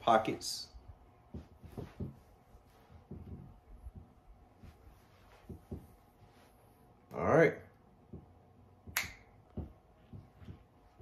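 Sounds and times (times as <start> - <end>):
soft low thumps: 0.8 - 6.5, 8.0 - 11.0
sharp snap: 8.9 - 9.3.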